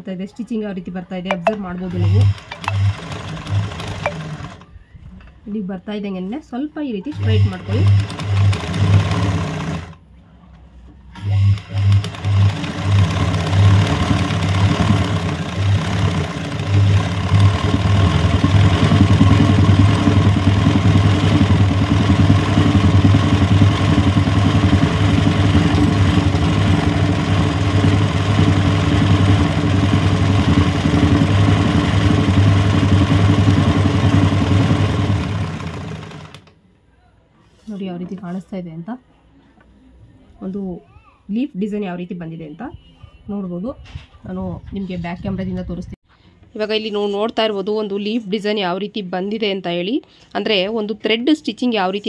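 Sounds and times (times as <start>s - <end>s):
sewing machine stitching: 1.4s - 4.7s, 7.1s - 10.0s, 11.2s - 36.6s.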